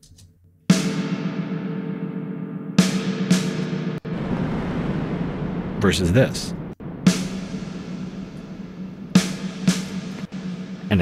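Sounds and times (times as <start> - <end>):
drum hits with long reverb: 0.7 - 11.0
steady low note: 4.0 - 10.9.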